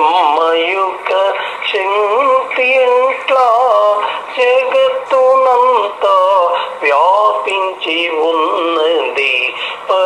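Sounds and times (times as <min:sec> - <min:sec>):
man singing unaccompanied: 0:00.0 - 0:10.0.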